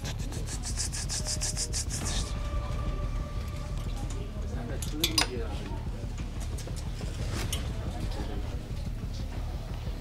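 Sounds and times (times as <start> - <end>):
rhythmic rubbing strokes: 0.0 - 4.8.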